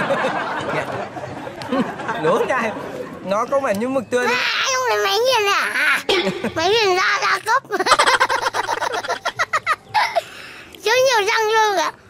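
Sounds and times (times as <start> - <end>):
child laughing: 4.3 - 10.3.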